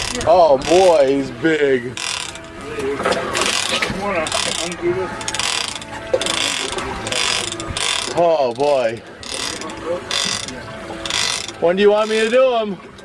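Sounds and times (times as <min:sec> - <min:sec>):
fishing reel clicker ratcheting: 0:00.0 - 0:02.6, 0:03.4 - 0:12.4.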